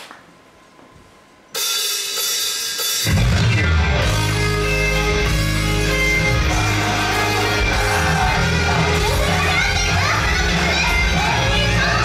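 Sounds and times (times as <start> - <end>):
pop band over loudspeakers: 3.0 - 12.0
high-pitched voices singing: 6.2 - 12.0.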